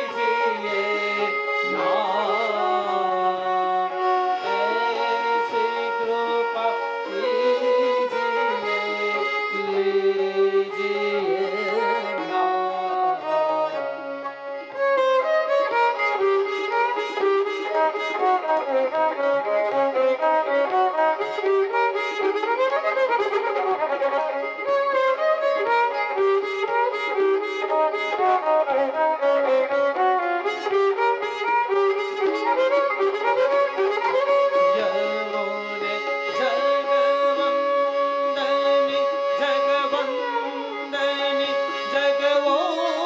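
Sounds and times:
harmonium: 0.0 - 43.0
violin melody: 0.0 - 43.0.

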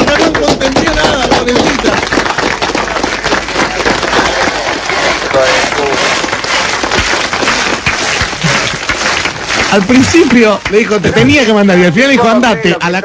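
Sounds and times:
people clapping: 0.0 - 13.0
people talking over one another: 0.0 - 13.0.

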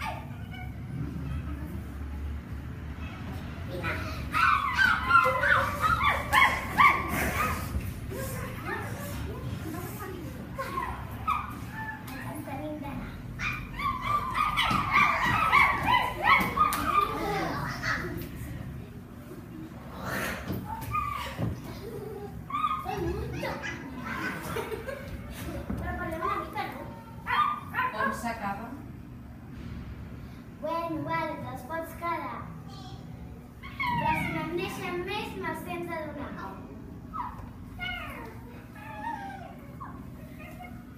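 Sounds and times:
children yipping like puppies: 4.3 - 9.1, 10.6 - 12.2, 13.4 - 18.1, 20.7 - 24.8, 27.2 - 28.1, 33.6 - 34.4, 37.1 - 40.9.

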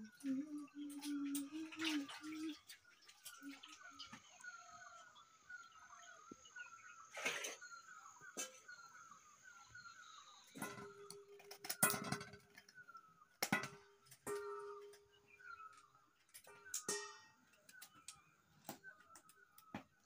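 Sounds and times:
faint birdsong: 0.0 - 20.0.

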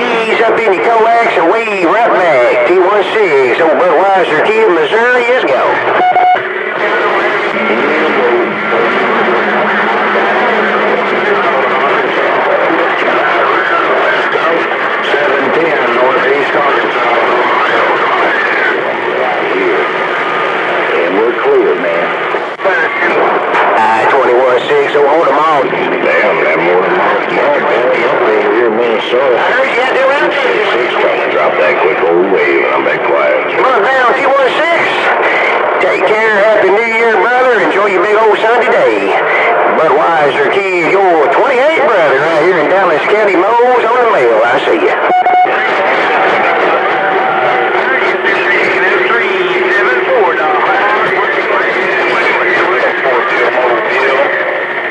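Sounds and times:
garbled radio voices: 0.0 - 54.9
radio hiss: 0.0 - 54.9.

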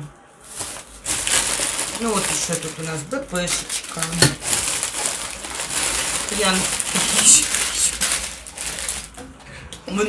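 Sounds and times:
plastic packets crinkling: 0.4 - 9.2.

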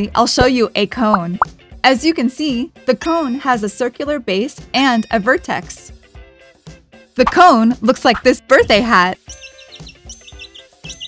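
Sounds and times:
soft background music: 0.0 - 11.0
cartoon bird tweeting: 9.4 - 11.0.

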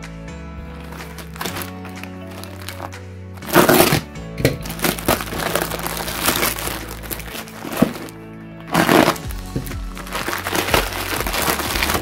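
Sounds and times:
background music with sustained tones: 0.0 - 12.0
bubble wrap crinkling and crackling: 0.7 - 12.0.

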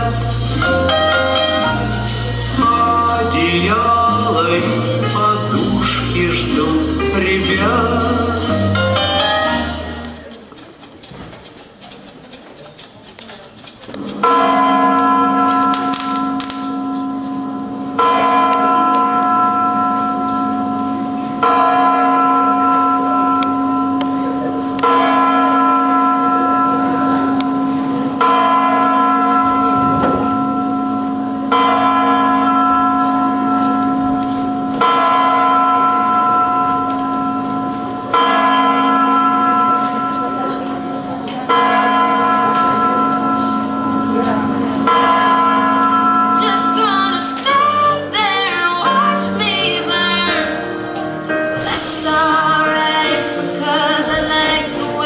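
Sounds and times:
large bell tolling: 14.0 - 55.0.

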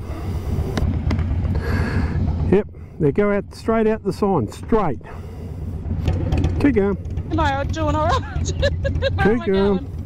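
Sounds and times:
motorcycle idling: 0.0 - 10.0
person speaking: 7.3 - 9.9.

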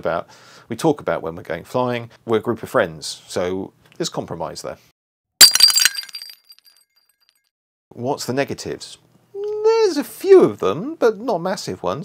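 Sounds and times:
glass shattering: 5.4 - 6.8
tinkling glass pieces: 5.4 - 6.8.

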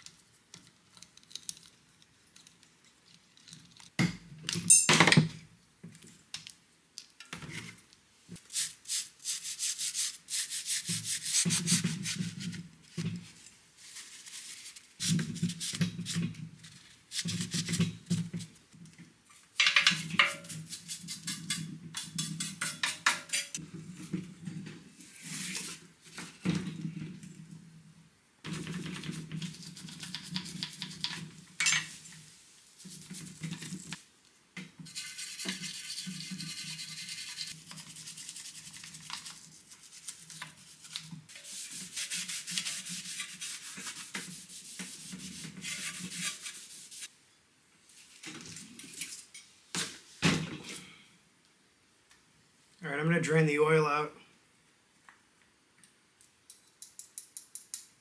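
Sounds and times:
brush scrubbing metal: 8.5 - 12.6, 20.2 - 23.6, 34.9 - 47.1.

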